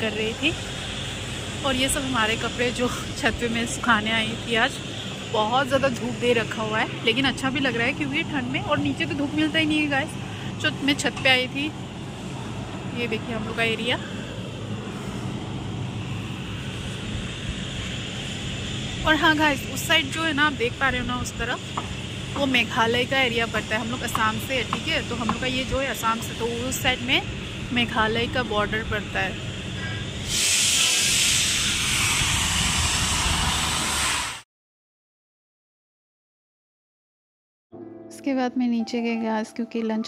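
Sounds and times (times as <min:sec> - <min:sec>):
low outdoor neighbourhood rumble: 0:00.0 - 0:33.2
loud steady hiss: 0:00.0 - 0:34.4.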